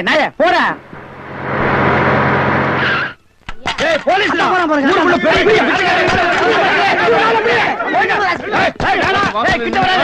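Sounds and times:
van engine running: 0.8s - 3.1s.

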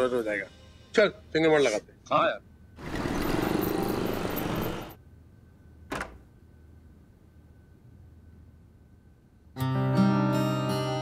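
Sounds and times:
auto-rickshaw and motorbike engines: 2.8s - 4.9s.

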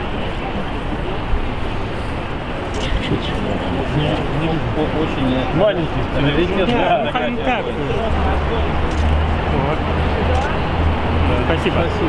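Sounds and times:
indistinct chatter of people: 0.0s - 12.0s
low traffic rumble: 0.0s - 12.0s.

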